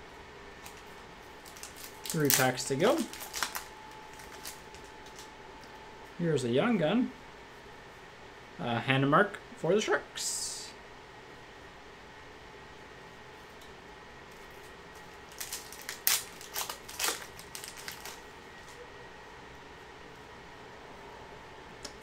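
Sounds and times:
faint steady hum: 0:00.0 - 0:22.0
foil wrapper tearing and crinkling: 0:00.6 - 0:05.3, 0:15.3 - 0:18.2.

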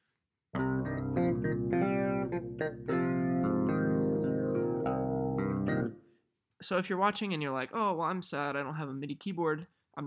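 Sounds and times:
clavinet notes and chord: 0:00.6 - 0:05.9.

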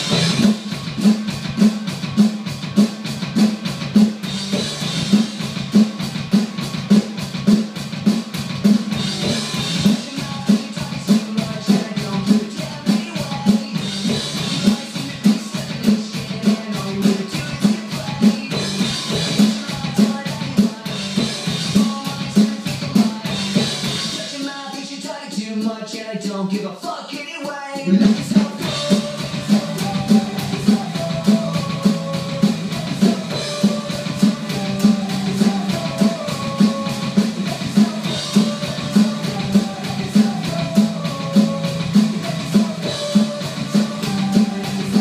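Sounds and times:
drum kit playing rock beat: 0:00.0 - 0:26.0, 0:27.8 - 0:45.0.

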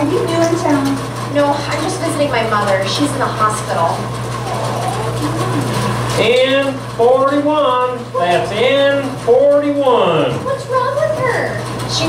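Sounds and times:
low mechanical hum: 0:00.0 - 0:12.0
faint voices: 0:01.4 - 0:06.9.

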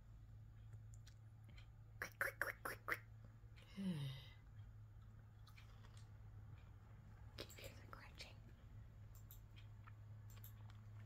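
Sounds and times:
low steady hum: 0:00.0 - 0:11.0
chewing crunches: 0:05.0 - 0:06.6, 0:09.6 - 0:11.0.

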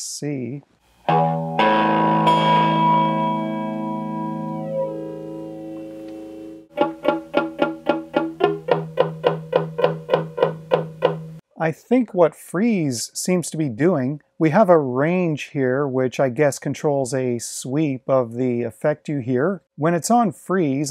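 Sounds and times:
flanged electric guitar chord: 0:01.1 - 0:09.1.

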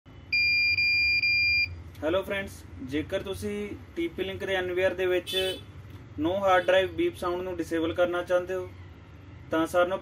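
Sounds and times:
high-pitched alarm beeps: 0:00.3 - 0:01.8.

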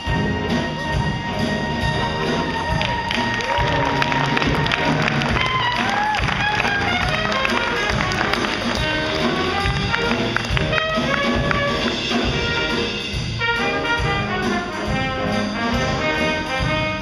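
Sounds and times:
drum kit: 0:00.0 - 0:17.0
horn melody with scooped notes: 0:00.0 - 0:17.0
piano: 0:00.0 - 0:17.0.

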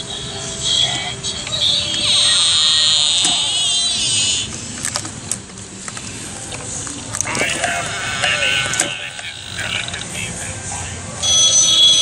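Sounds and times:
spooky voice through speaker: 0:07.2 - 0:11.2.

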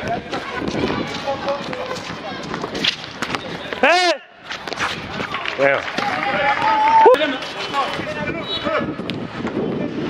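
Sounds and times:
footsteps on concrete: 0:00.0 - 0:08.2
shoe scuffs: 0:00.3 - 0:03.8, 0:04.4 - 0:05.3.

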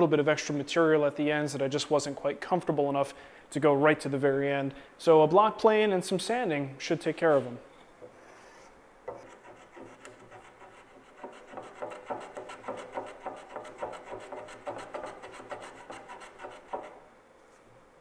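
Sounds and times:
hand plane shaving wood: 0:08.4 - 0:17.0.

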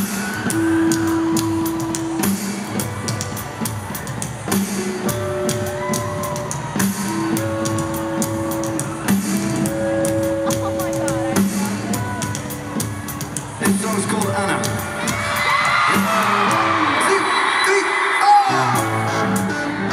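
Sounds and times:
live rock band playing: 0:00.0 - 0:17.2, 0:18.5 - 0:19.9
steady drum beat: 0:00.0 - 0:17.3.

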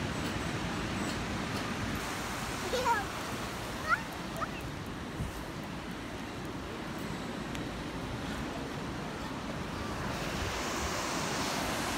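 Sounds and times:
surf washing over sand: 0:00.0 - 0:11.9
wind rumbling on microphone: 0:00.0 - 0:11.9.

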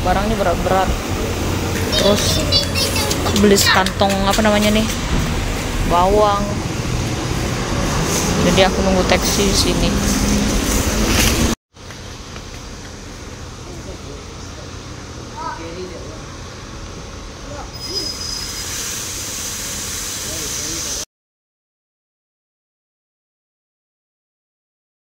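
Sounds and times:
traffic rumble: 0:00.0 - 0:18.0.

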